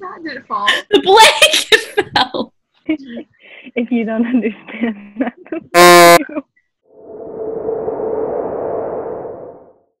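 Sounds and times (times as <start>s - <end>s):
noisy hollow swell: 6.9s - 10.0s.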